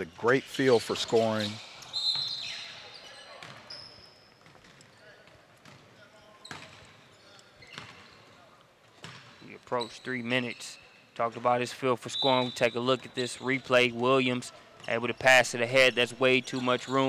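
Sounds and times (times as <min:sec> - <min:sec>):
gym background noise: 0:00.0 - 0:17.0.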